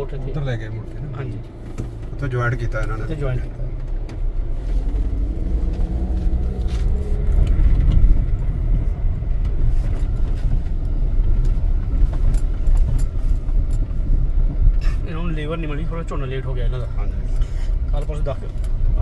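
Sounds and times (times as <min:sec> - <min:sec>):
car engine and road noise: 0:00.0 - 0:19.0
light clicks or rattles: 0:10.0 - 0:14.0.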